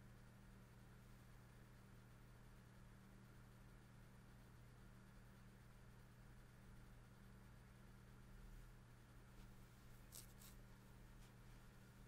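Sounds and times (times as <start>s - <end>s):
low steady hum: 0.0s - 12.0s
booklet page turning: 10.1s - 10.6s.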